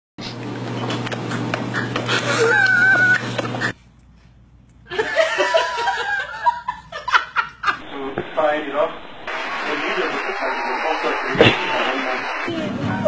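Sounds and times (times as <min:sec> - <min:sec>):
person laughing: 0:02.1 - 0:03.2
low hum: 0:07.8 - 0:12.6.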